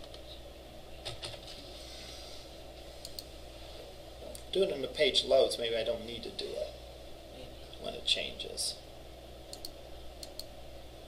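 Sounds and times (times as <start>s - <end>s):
low room hum: 0.0s - 11.0s
computer keyboard keystrokes: 9.5s - 10.5s.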